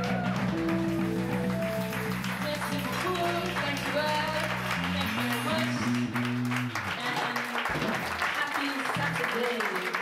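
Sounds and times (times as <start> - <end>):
live band music with keyboard: 0.0 - 8.2.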